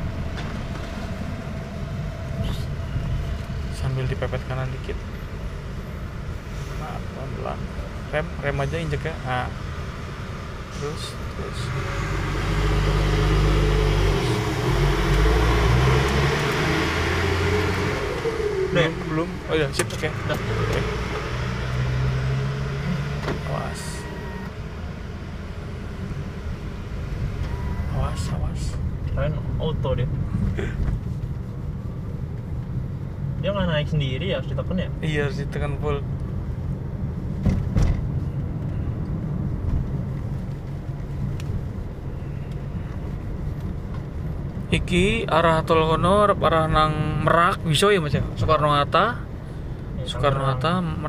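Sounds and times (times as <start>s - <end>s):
car engine and road rumble: 0.0s - 51.0s.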